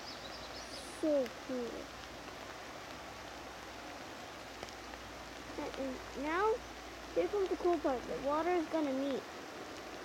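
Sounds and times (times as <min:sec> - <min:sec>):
light rain on foliage: 0:00.0 - 0:10.0.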